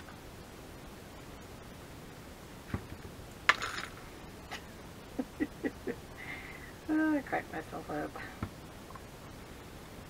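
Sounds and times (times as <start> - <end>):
soft chuckle: 5.2 - 6.1.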